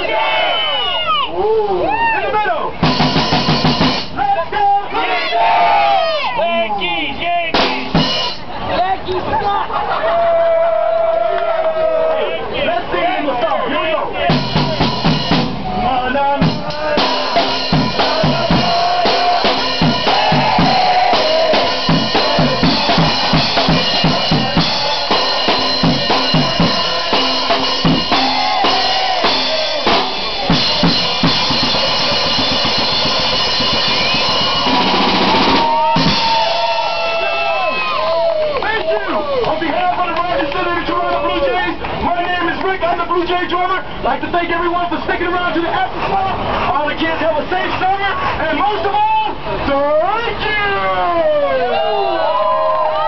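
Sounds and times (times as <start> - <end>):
crowd shouting: 0.0 - 41.8, 48.1 - 53.0
drum kit played fast: 2.8 - 4.2, 7.5 - 8.6, 14.2 - 37.6.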